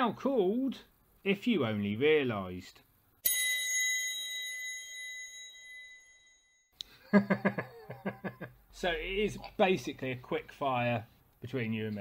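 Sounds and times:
bell chime: 0:03.2 - 0:06.7.

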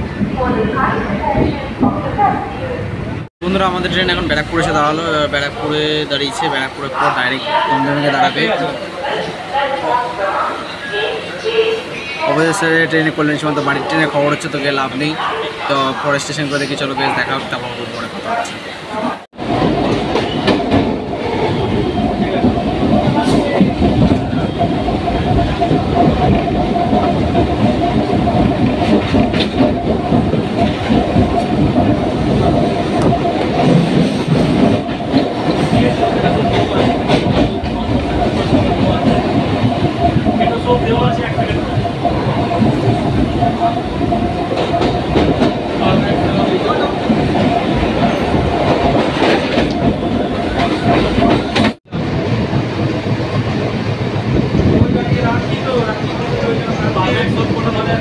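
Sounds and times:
steady train whine: 0:17.5 - 0:58.0
train wheels clattering: 0:19.5 - 0:58.0.

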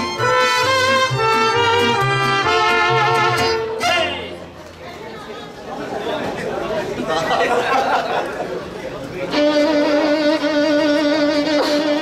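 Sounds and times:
mariachi band playing: 0:00.0 - 0:05.3, 0:09.1 - 0:12.0
indistinct chatter of voices: 0:03.4 - 0:12.0.

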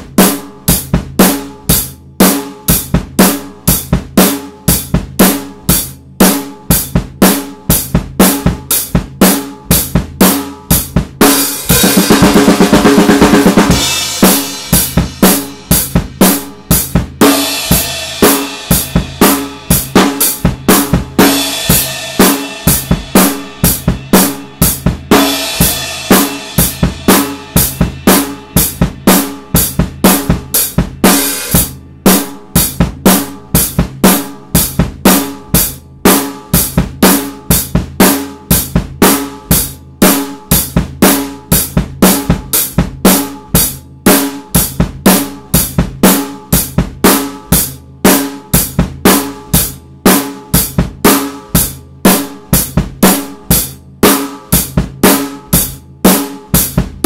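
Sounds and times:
drum kit rock beat: 0:00.0 - 0:57.0.

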